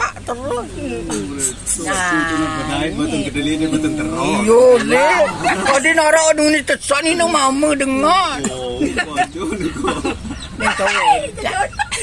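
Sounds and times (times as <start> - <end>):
voices talking: 0.0 - 12.0.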